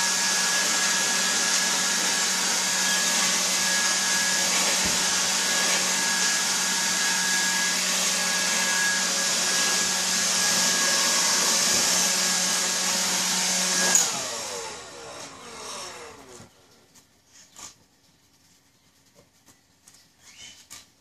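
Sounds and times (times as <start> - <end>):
leaf blower running: 0.0 - 16.6.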